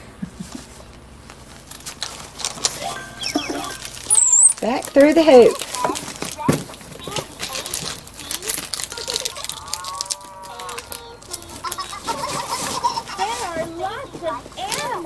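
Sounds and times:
stroller fabric and toys rattling: 0.5 - 15.0
chickens clucking: 2.8 - 15.0.

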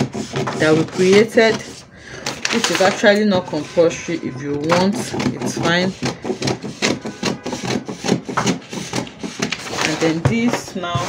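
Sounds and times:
scissors snipping paper: 0.0 - 3.8, 4.5 - 11.0
paper rustling: 0.0 - 11.0.

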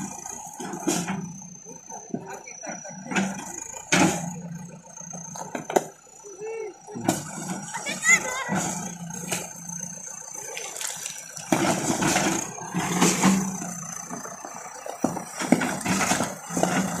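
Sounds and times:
diesel engine running: 0.0 - 17.0.

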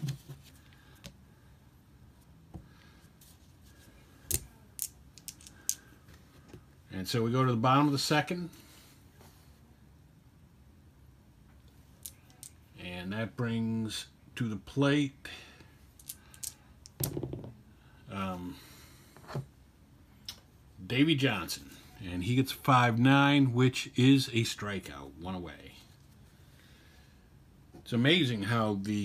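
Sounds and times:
dice clicking on tabletop: 4.3 - 5.8, 16.0 - 17.5
dice clattering: 4.3 - 5.9, 16.0 - 17.5.

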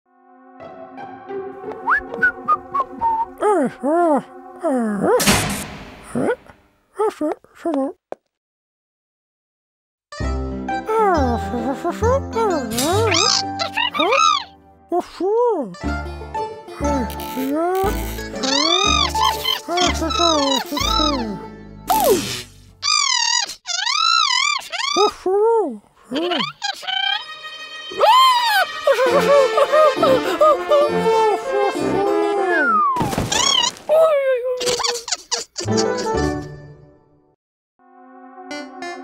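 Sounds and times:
cartoon music: 10.8 - 14.6, 16.1 - 22.2, 26.3 - 33.0, 37.9 - 39.0
squeaky cartoon character voice: 10.9 - 15.8, 16.8 - 22.2, 22.8 - 27.3, 27.9 - 29.2, 33.3 - 36.2
short crackling chirps: 17.1 - 21.2.

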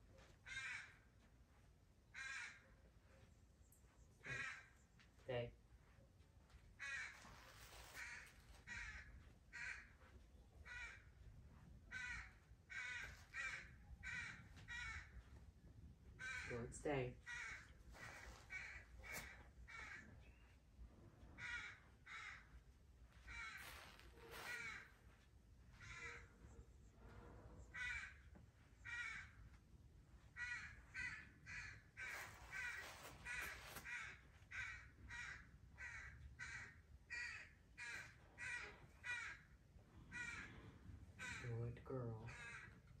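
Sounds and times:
bird calling faintly: 23.1 - 29.5.

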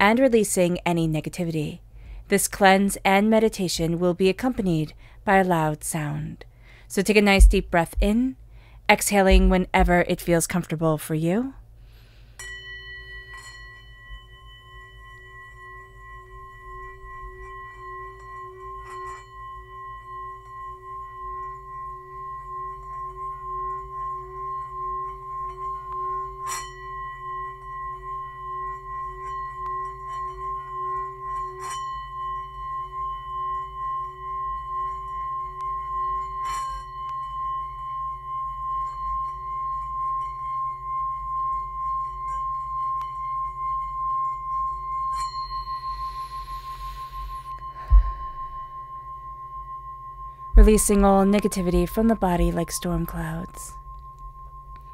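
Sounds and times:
singing bowl ringing: 12.0 - 54.9.

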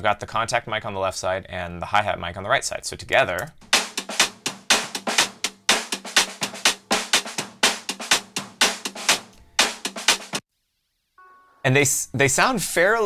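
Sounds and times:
scratchy fast drum strokes: 3.6 - 10.4.

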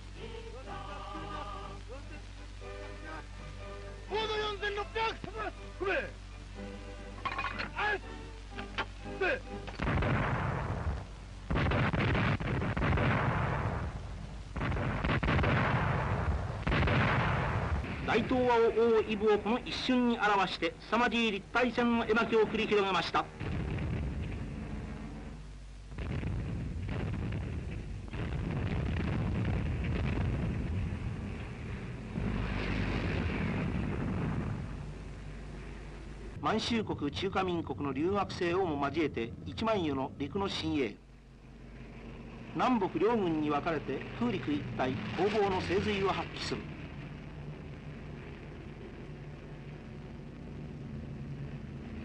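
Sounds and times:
film soundtrack music: 0.0 - 11.6
anti-aircraft gunfire bursts: 9.8 - 13.9, 14.6 - 18.1
propeller aircraft engines droning: 18.0 - 28.2, 29.7 - 52.0.

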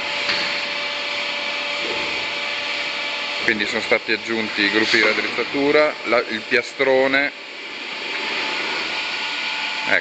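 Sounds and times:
wire bending machine whirring hiss: 0.0 - 10.0.

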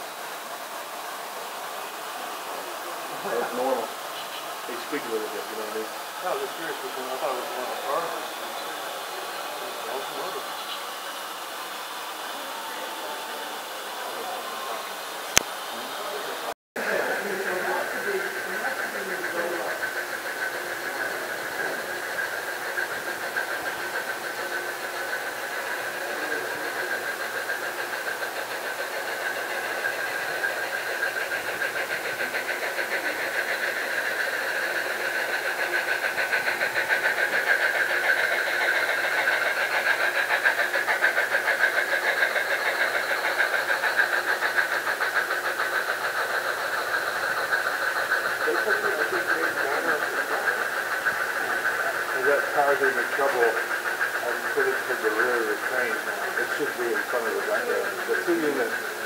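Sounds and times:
model train humming and rattling: 0.0 - 59.0.

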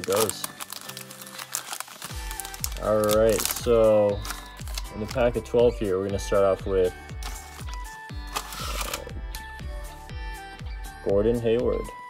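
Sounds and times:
trading cards rustling: 0.0 - 5.4, 7.1 - 9.1
background music with steady beat: 2.0 - 12.0.

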